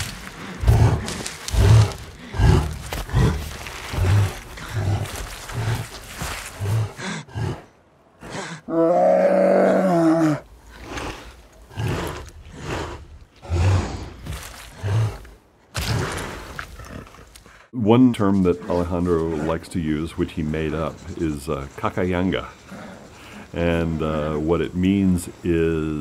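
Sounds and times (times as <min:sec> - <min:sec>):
bear breathing and grunting: 0:00.0 - 0:26.0.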